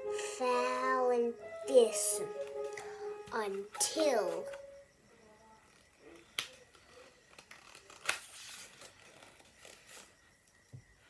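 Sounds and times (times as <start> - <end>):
book pages turning: 6.2 - 10.1.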